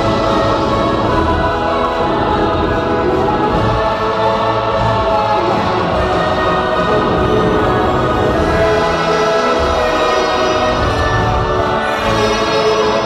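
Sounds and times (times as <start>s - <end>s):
choir singing sustained notes: 0.0s - 13.0s
low musical accompaniment: 0.0s - 13.0s.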